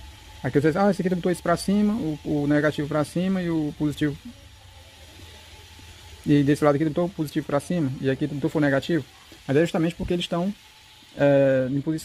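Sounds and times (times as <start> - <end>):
background hiss: 0.0 - 12.0
person speaking: 0.4 - 4.4, 6.2 - 10.6.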